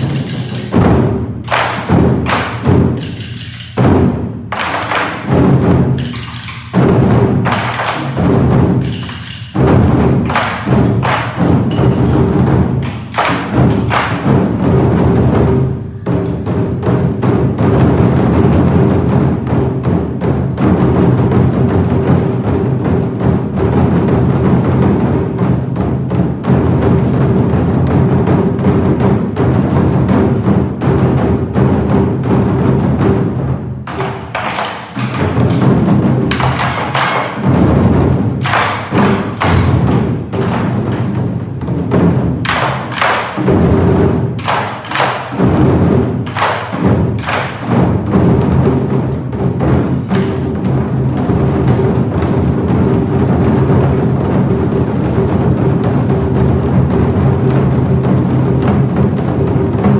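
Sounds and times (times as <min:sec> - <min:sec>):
barrel drums booming: 0:00.0 - 0:59.9.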